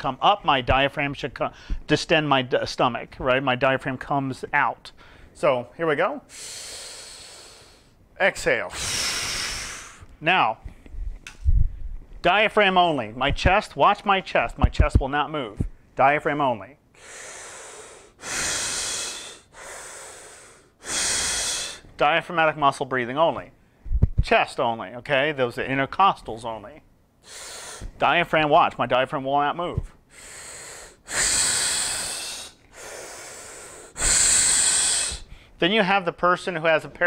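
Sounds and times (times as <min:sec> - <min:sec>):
man breathing deeply: 0:01.6 - 0:01.9, 0:05.0 - 0:05.4, 0:06.3 - 0:08.0, 0:08.7 - 0:10.1, 0:16.9 - 0:21.9, 0:27.2 - 0:28.0, 0:30.0 - 0:35.6.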